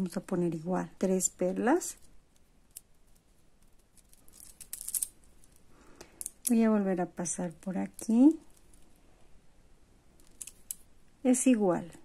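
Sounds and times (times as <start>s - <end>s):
plastic beads clicking together: 1.9s - 6.7s, 10.2s - 10.9s.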